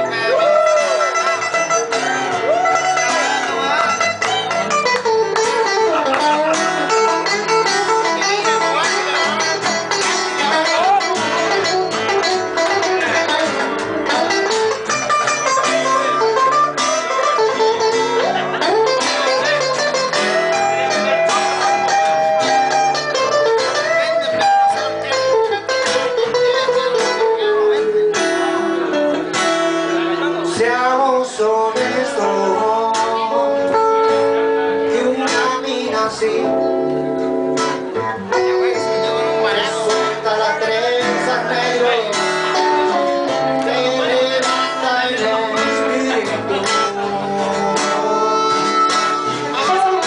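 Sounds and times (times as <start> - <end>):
acoustic guitar: 0.0 - 50.0
electric guitar bending lead: 0.0 - 50.0
upright double bass: 0.0 - 50.0.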